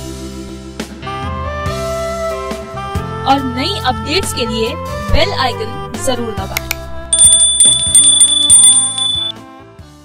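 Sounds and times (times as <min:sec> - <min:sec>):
background music: 0:00.0 - 0:09.3
high notification bell ringing: 0:07.0 - 0:09.3.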